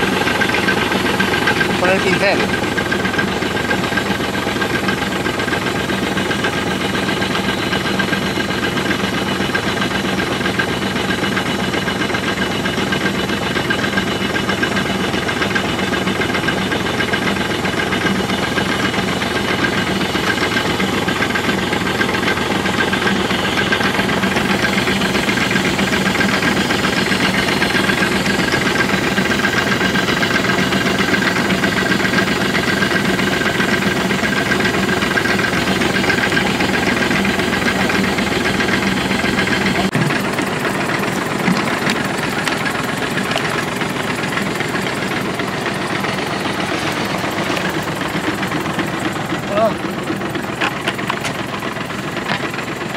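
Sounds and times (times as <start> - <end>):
tractor engine running: 0.0 - 52.9.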